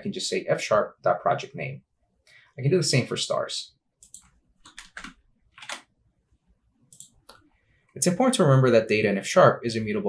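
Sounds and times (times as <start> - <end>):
faint keyboard keystrokes: 4.0 - 5.9.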